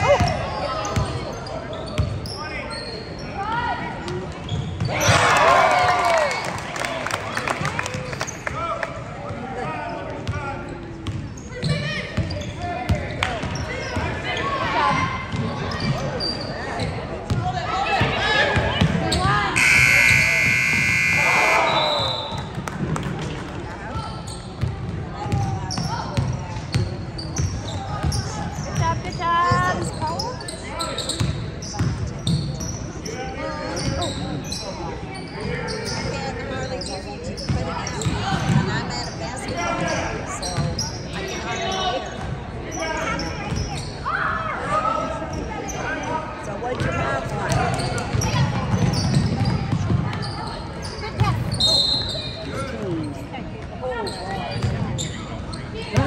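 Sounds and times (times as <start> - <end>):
spectators' voices echoing: 12.9 - 24.0
loud buzzer: 19.6 - 21.8.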